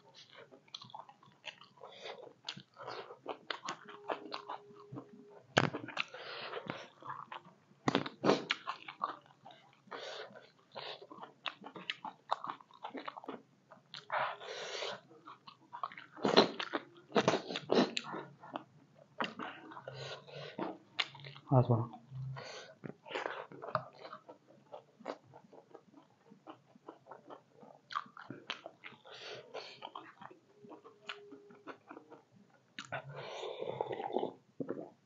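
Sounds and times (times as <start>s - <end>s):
chewing and crunching food: 0.0s - 35.0s.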